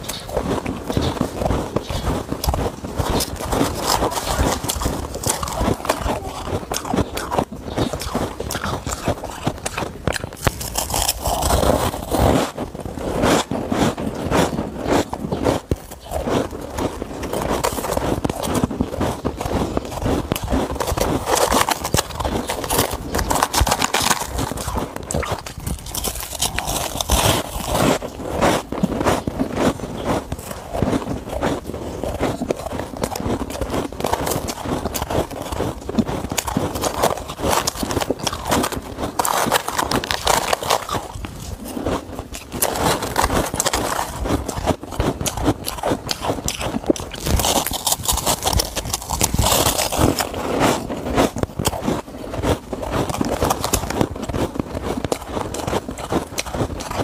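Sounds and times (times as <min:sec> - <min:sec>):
chewing crunchy frost: 0:00.0 - 0:57.0.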